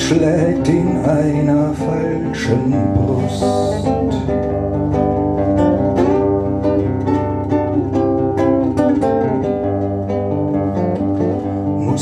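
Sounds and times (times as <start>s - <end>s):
acoustic guitar picking chords: 0.0s - 12.0s.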